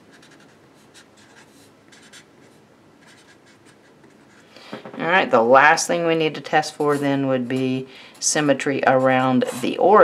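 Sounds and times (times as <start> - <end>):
marker scratching on paper: 0.0 - 4.5.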